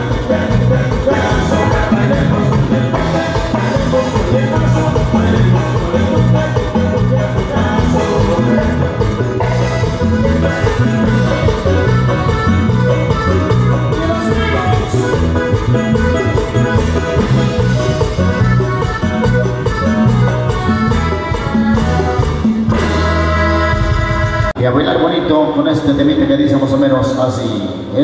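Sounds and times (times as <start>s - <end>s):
bright keyboard melody: 0.0s - 24.8s
live dance band playing: 0.0s - 27.9s.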